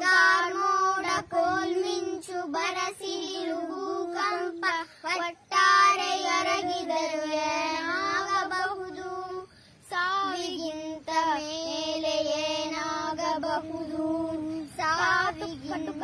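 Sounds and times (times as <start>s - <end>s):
high voice singing slow melody: 0.0s - 16.0s.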